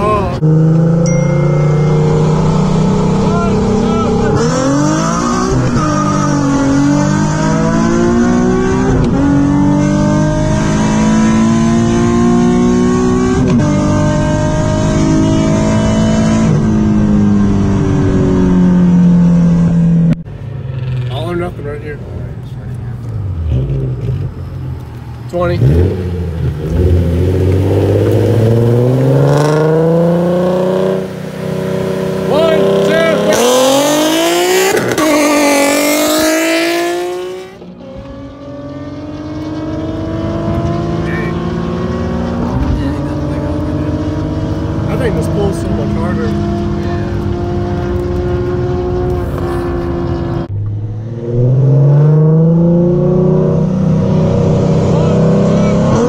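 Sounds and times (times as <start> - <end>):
car engine revving at full throttle: 0.0 - 22.0, 23.2 - 56.0.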